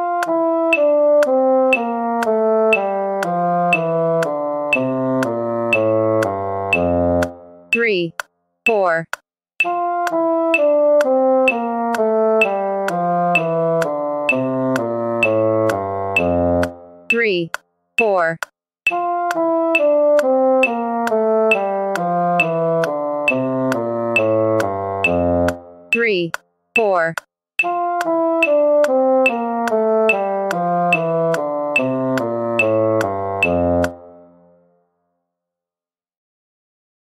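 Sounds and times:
trombone playing descending scale: 0.0s - 7.4s, 9.7s - 16.8s, 18.9s - 25.6s, 27.6s - 34.0s
metronome clicking: 0.1s - 34.0s.

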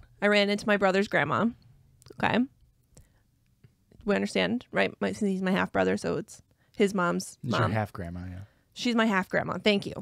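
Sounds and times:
person saying okay: 7.5s - 7.8s.

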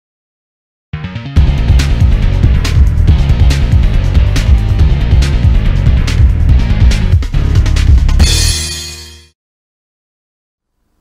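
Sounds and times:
news theme music with heavy bass: 1.0s - 9.3s.

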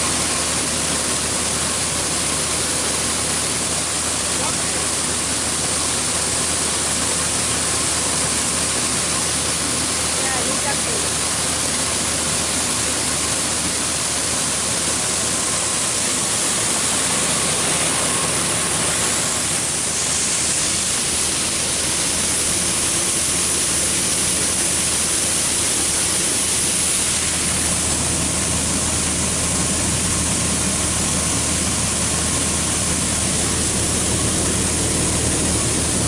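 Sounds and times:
combine harvester drone: 0.0s - 36.0s
hiss of pouring grain: 0.0s - 36.0s.

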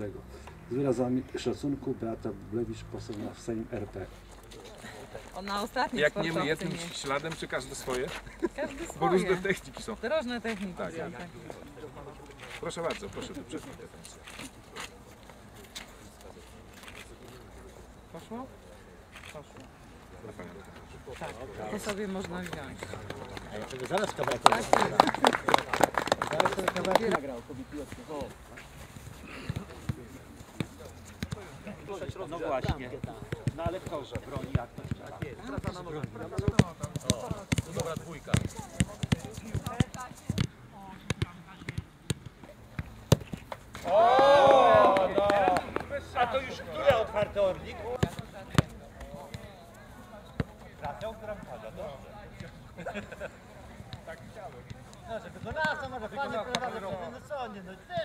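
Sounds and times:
football being kicked: 32.1s - 44.0s, 47.9s - 49.5s.

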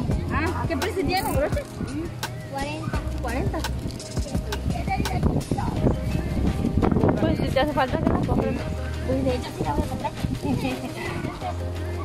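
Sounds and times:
people talking indistinctly: 0.0s - 12.0s.

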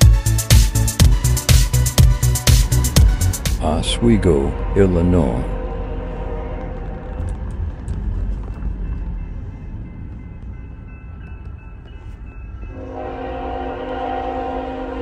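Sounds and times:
car driving low rumble: 2.0s - 12.3s
locomotive air horn: 2.7s - 7.2s, 12.7s - 15.0s.

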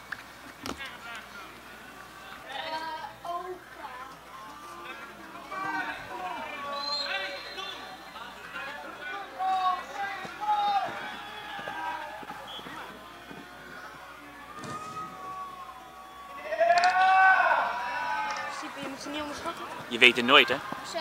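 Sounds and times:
voices calling out: 0.0s - 21.0s
crowd shouting: 0.8s - 21.0s.

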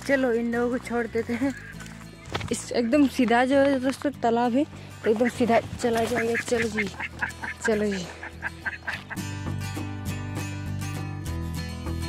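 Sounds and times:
strummed acoustic guitar music: 0.0s - 12.0s
ducks quacking: 1.2s - 1.8s, 2.6s - 3.2s, 5.0s - 9.3s.

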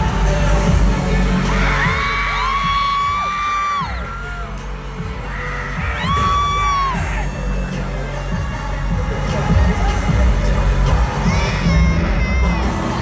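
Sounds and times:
crowd yelling and whooping: 0.6s - 13.0s.

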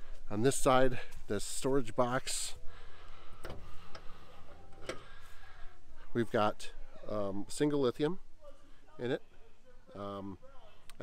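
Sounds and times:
metal latch clicks: 3.4s - 5.2s.

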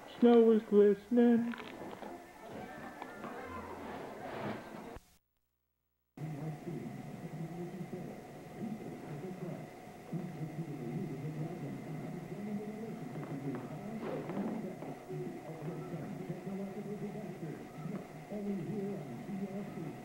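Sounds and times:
muffled talking: 0.0s - 5.0s, 6.2s - 20.0s.

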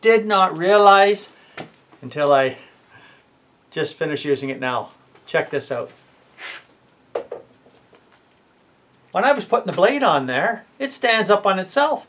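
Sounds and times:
grinder knocking on workbench: 7.1s - 7.5s.

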